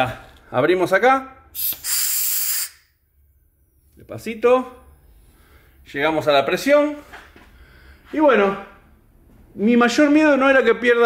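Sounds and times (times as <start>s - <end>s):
compressed air hissing: 1.5s - 3.0s.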